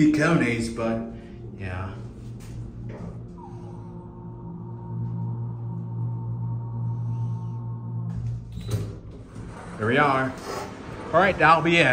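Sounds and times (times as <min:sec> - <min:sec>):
elevator high whine: 0:00.0 - 0:11.9
elevator low hum: 0:00.0 - 0:11.9.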